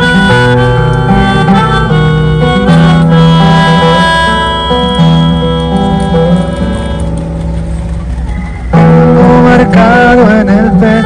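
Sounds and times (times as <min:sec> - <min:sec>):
live guitar and band music: 0:00.0 - 0:11.0.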